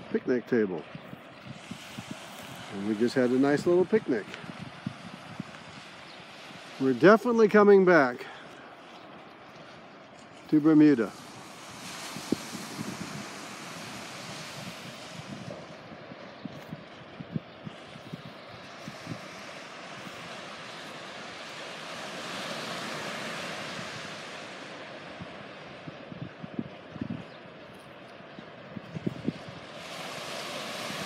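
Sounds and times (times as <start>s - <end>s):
surf washing on sandy beach: 0.0s - 31.0s
wind buffeting microphone: 0.0s - 31.0s.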